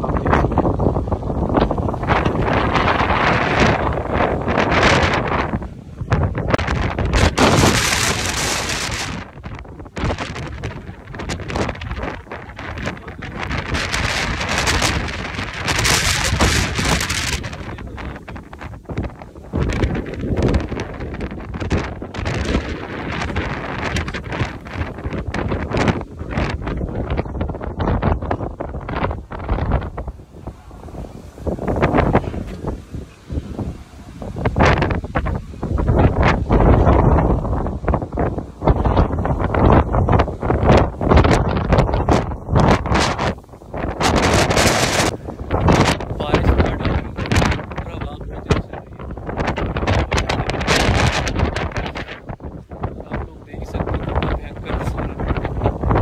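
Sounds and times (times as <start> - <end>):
storm wind buffeting microphone: 0.0 - 56.0.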